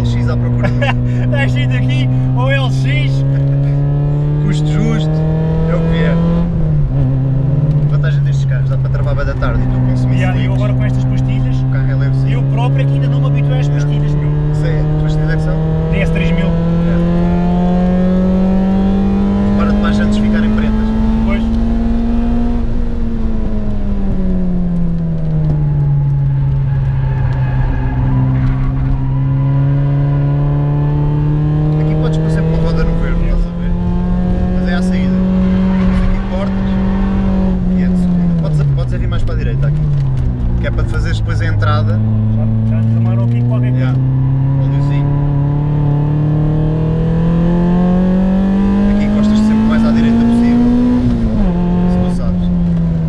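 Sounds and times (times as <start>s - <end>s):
race car engine revving: 0.0s - 53.0s.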